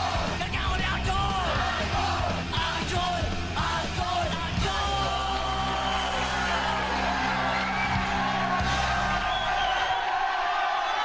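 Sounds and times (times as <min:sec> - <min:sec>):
crowd yelling along: 0:00.0 - 0:03.0, 0:03.8 - 0:11.0
punk rock band playing: 0:00.0 - 0:09.6
shouted lead vocal: 0:00.0 - 0:10.4.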